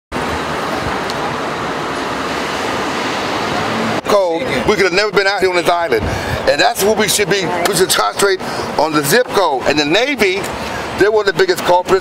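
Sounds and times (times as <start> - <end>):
city street traffic: 0.1 - 12.0.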